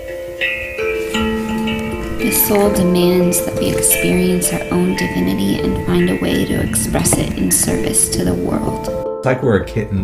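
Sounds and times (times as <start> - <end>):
handpan melody: 0.0 - 9.2.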